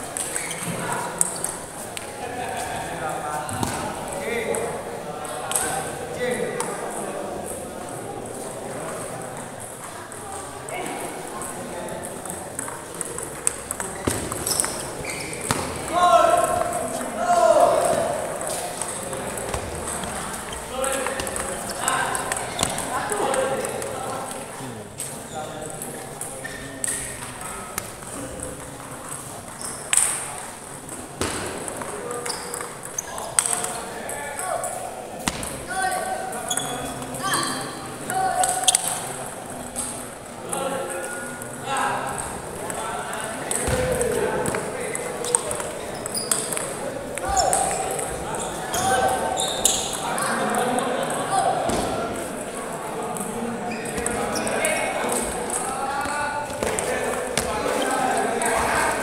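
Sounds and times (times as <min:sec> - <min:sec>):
hubbub of voices: 0:00.0 - 0:59.0.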